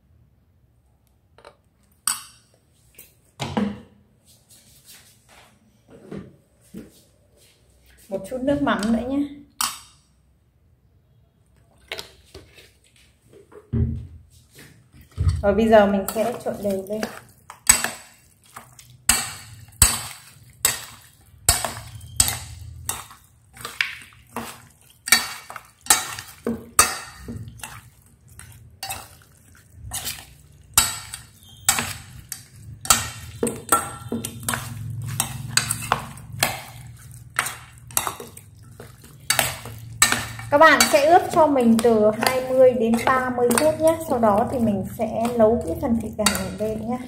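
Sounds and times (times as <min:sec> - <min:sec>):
metal spoon clinking in steel bowl: 0:19.1 - 0:27.8, 0:29.9 - 0:47.0.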